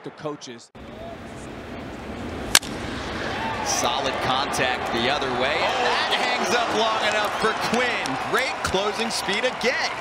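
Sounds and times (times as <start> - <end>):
ballpark crowd noise: 0.0 - 10.0
bat cracking against ball: 2.5 - 2.9.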